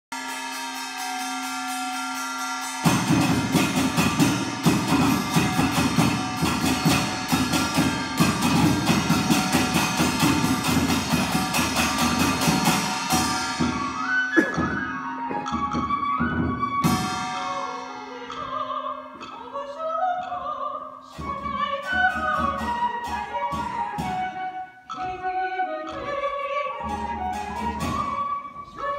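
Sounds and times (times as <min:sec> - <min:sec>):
held pitched note: 0:00.2 - 0:19.5
hand drums playing fast rhythm: 0:02.8 - 0:15.9.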